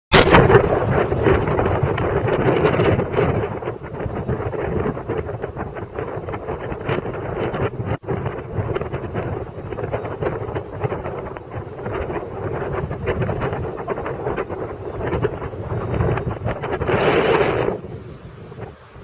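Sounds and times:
wind buffeting microphone: 0:00.1 - 0:19.0.

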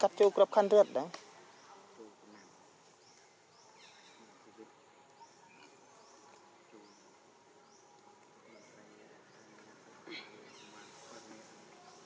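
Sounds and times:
soft insect hum: 0:00.0 - 0:12.0.

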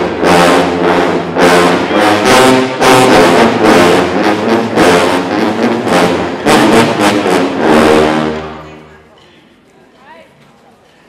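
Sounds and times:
sousaphone ensemble brass chords: 0:00.0 - 0:09.1.

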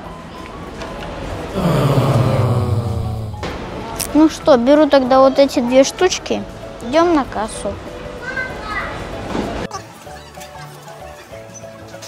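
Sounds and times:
busy background noise: 0:00.0 - 0:12.0.

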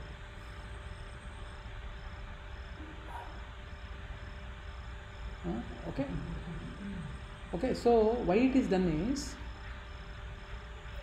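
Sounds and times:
cricket chirping: 0:00.0 - 0:11.0
low hum: 0:00.0 - 0:11.0.

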